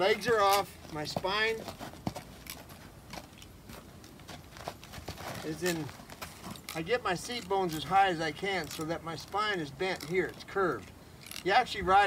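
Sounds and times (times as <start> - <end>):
horse hooves on dirt: 0.0 - 11.7.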